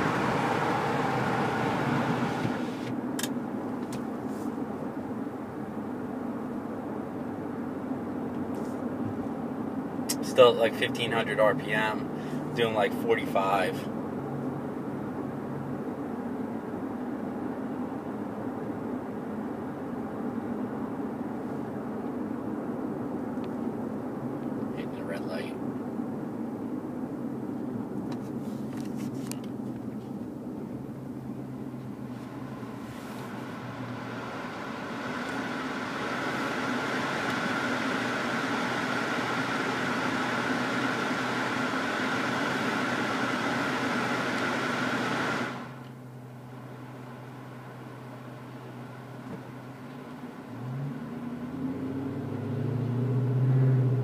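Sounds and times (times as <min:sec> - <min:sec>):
car engine hum from cabin: 0:00.0 - 0:54.0
road and wind noise: 0:00.0 - 0:54.0.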